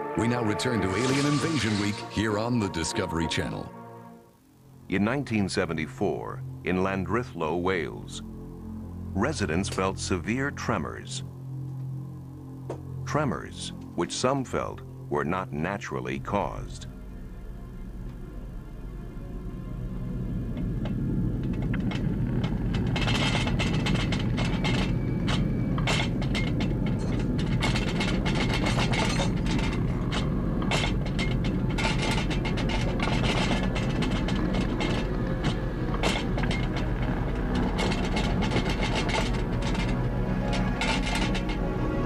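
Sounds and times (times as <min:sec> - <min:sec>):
background music: 0:00.0 - 0:42.0
deep rumble: 0:15.7 - 0:42.0
rapid rattling and clattering: 0:20.5 - 0:42.0.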